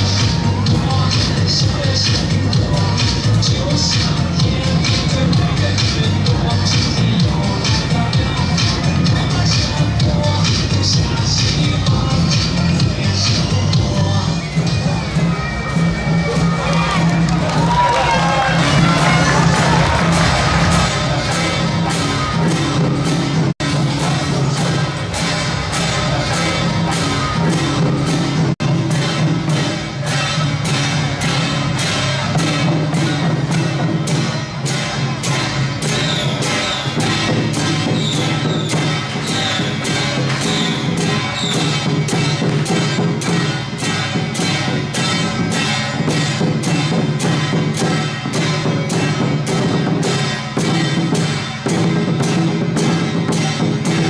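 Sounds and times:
hand cymbals clashing: 0.0s - 54.0s
large barrel drums: 0.0s - 54.0s.

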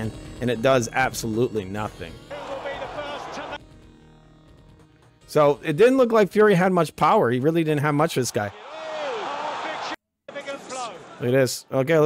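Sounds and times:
arena crowd noise: 2.3s - 3.6s, 8.5s - 12.0s.

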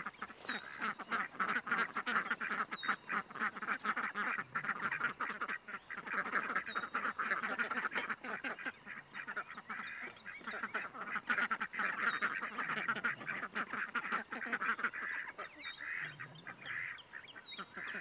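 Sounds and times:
ducks quacking: 0.0s - 18.0s.

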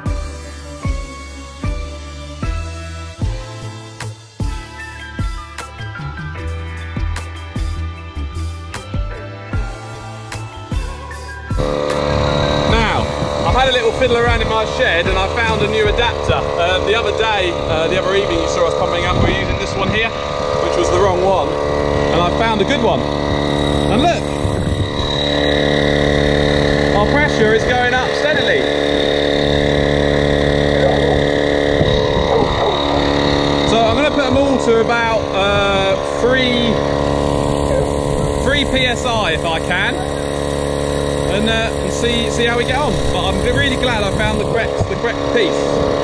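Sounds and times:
air pump running: 0.0s - 5.8s, 6.4s - 46.0s
background music: 0.0s - 46.0s
man speaking: 12.7s - 23.1s, 23.9s - 24.4s, 26.9s - 28.7s, 30.8s - 31.4s, 32.2s - 36.9s, 37.5s - 40.2s, 41.3s - 45.7s.

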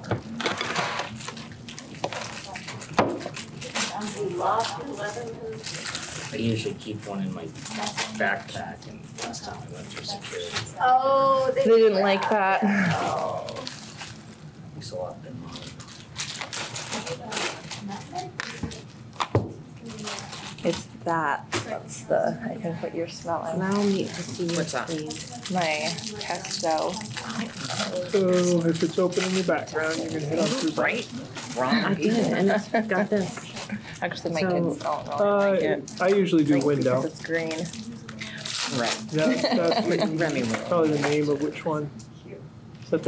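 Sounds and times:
low conversation: 2.1s - 16.1s, 19.6s - 43.0s
low talk: 21.1s - 42.1s.

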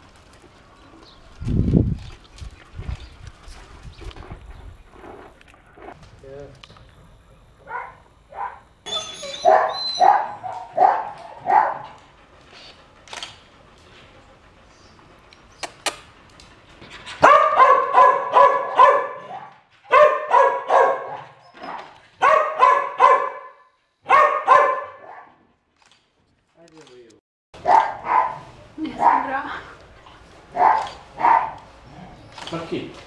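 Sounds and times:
dog barking and yelping: 7.6s - 12.0s, 17.2s - 25.4s, 27.6s - 29.5s, 30.4s - 32.4s.

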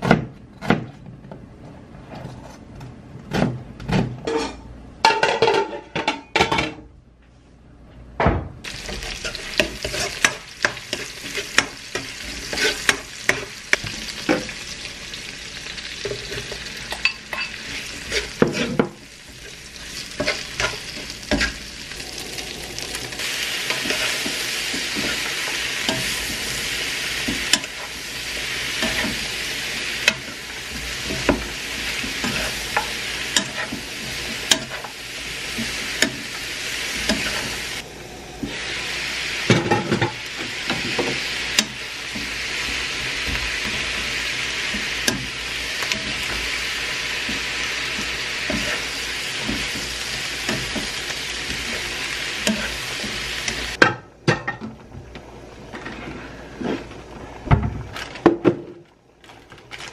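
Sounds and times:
food sizzling in a wok: 8.6s - 53.8s
wooden spatula stir-frying: 8.7s - 37.8s, 38.4s - 53.8s
metal spatula scraping a pan: 8.8s - 14.5s, 17.3s - 21.6s, 22.8s - 37.8s, 47.2s - 53.8s.

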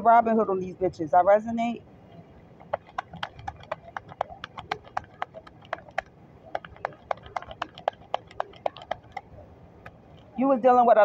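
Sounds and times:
sharp evenly spaced clicking: 2.6s - 10.2s.

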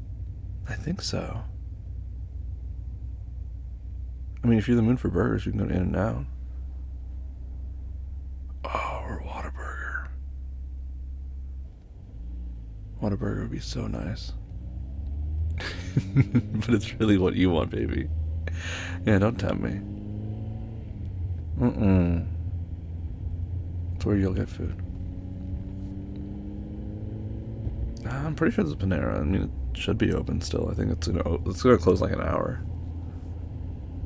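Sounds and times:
car cabin engine and road rumble: 0.0s - 34.0s.

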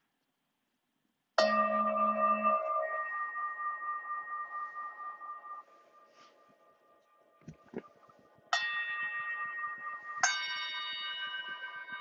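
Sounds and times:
meditation bell ringing: 1.4s - 7.4s, 8.6s - 12.0s.

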